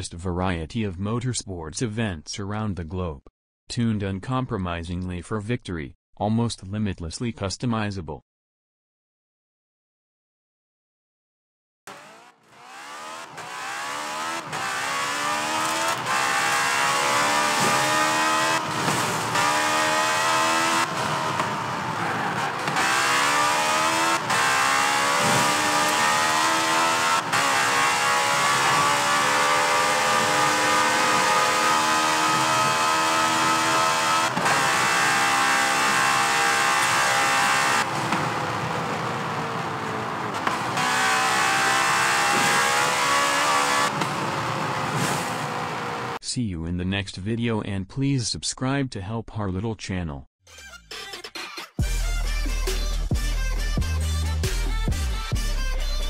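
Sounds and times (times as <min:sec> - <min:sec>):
race car engines revving: 0:11.9 - 0:46.2.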